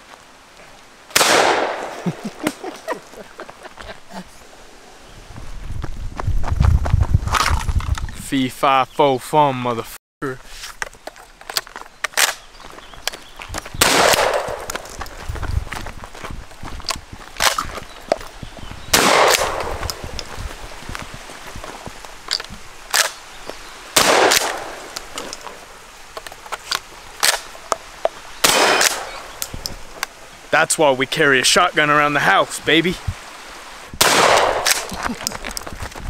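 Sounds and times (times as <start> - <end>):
shotgun shots: 1.1 - 2.0, 13.8 - 14.8, 18.9 - 20.0, 24.0 - 24.9, 28.4 - 29.2, 34.0 - 34.9.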